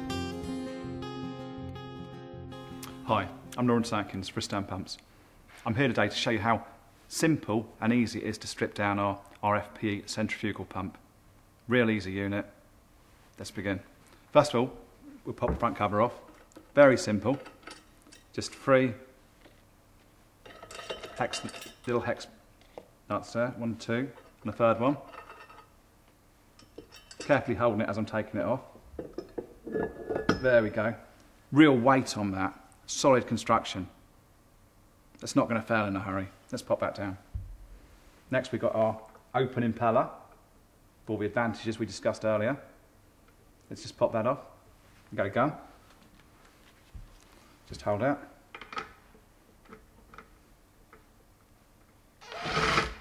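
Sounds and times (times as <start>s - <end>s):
metal cover clinking: 20.4s - 22.0s, 26.6s - 27.5s, 29.0s - 30.8s.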